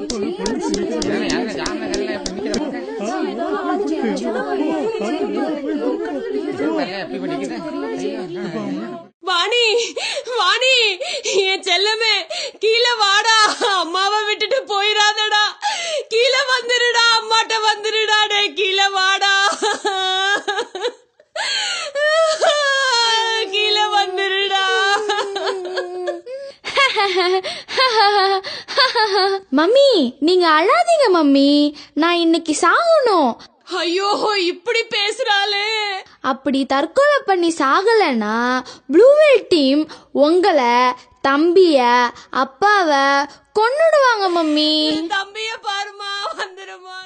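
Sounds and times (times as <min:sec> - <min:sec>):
crowd chatter: 0:00.0 - 0:09.1
high voice wailing: 0:22.0 - 0:26.3.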